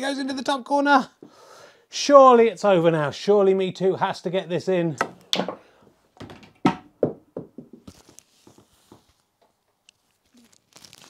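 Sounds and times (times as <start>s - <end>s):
ball knocking in pocket: 5.0s - 5.6s, 6.2s - 7.9s
snooker balls clacking: 5.0s - 5.6s, 6.2s - 7.9s.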